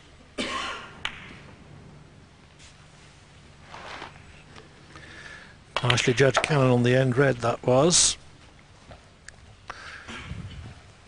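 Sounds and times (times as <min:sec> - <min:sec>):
snooker balls colliding: 0:01.0 - 0:01.5.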